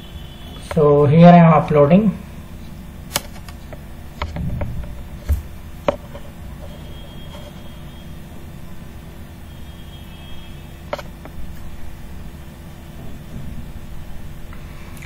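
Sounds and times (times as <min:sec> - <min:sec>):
faint constant hum: 0:00.0 - 0:15.0.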